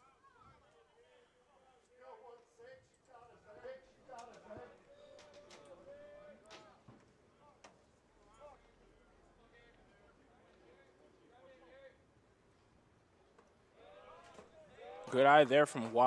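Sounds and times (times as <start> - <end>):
distant shouts and chatter: 0.0 - 12.2, 13.3 - 16.0.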